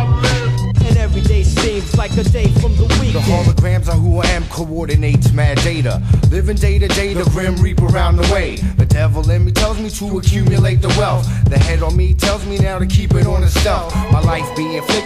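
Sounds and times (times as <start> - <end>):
hip-hop vocals over a beat: 0.0 - 15.0.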